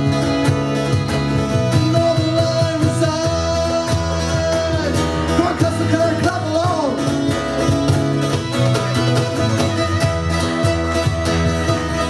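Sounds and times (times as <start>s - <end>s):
bowed fiddle melody: 0.0s - 12.0s
electric bass guitar: 0.0s - 12.0s
steady cajon beat: 0.0s - 12.0s
strummed acoustic guitar: 0.0s - 12.0s.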